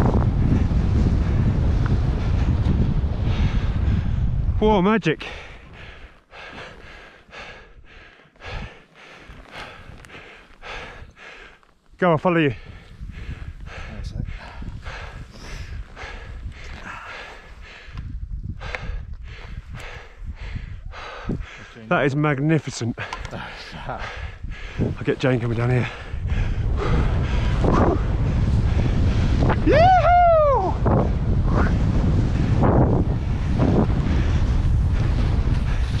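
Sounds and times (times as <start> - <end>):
wind buffeting microphone: 0.0 - 11.5, 12.1 - 36.0
heavy breathing: 5.2 - 11.7, 12.5 - 21.9, 22.9 - 29.5
person whooping: 29.5 - 30.8
skis running through powder snow: 31.8 - 36.0.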